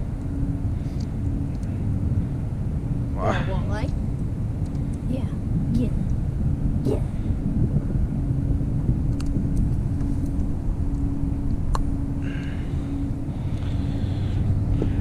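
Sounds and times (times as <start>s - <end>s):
boat motor running: 0.0s - 15.0s.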